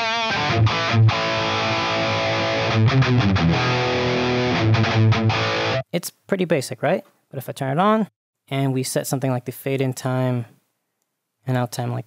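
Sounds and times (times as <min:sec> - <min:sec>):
electric guitar held notes: 0:00.0 - 0:05.8.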